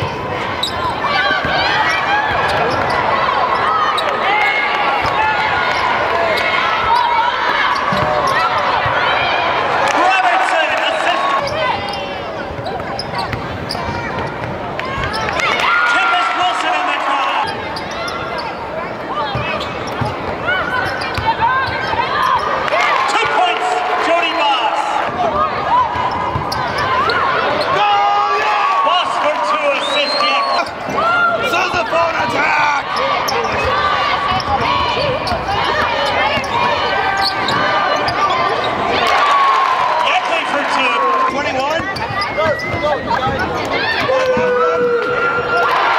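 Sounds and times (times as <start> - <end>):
crowd voices: 0.0 - 45.9
players shouting: 0.0 - 45.9
sneakers squeaking: 0.1 - 23.8, 24.5 - 27.8, 29.1 - 39.5, 40.3 - 45.9
shoe squeaks: 0.6 - 1.0, 11.4 - 14.4, 17.4 - 22.6, 26.1 - 27.8, 32.9 - 38.8, 41.7 - 43.6
basketball bouncing on court: 7.7 - 9.0, 11.4 - 15.5, 19.2 - 22.4, 25.9 - 27.2, 41.8 - 45.2.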